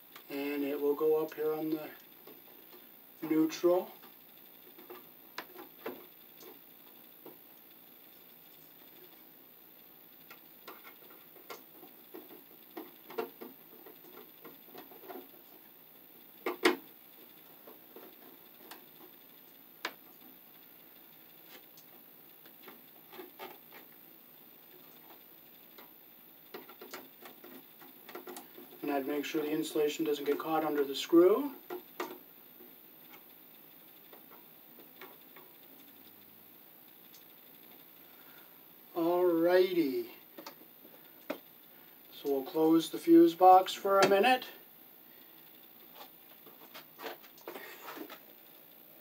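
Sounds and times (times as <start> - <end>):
wire scratching and clicking: 0.1 - 9.3, 10.1 - 24.0, 24.6 - 36.3, 45.4 - 48.6.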